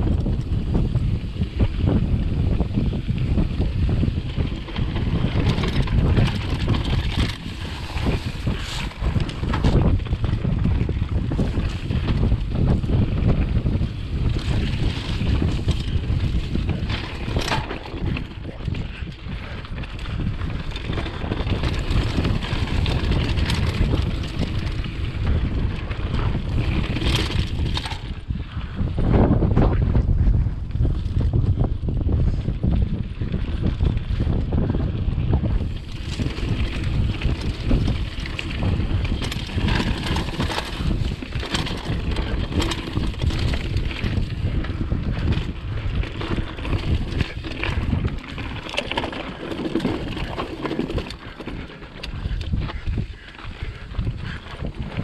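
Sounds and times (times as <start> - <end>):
bike rattling over rocks: 0.0 - 55.0
wind buffeting microphone: 0.0 - 55.0.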